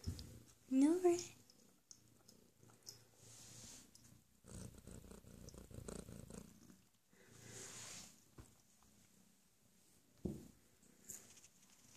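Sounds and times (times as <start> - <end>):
cat purring faintly: 0.0 - 9.3.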